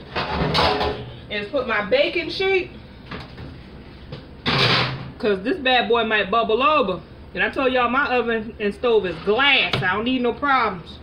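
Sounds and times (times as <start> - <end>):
baking sheet scraping: 8.9 - 9.7.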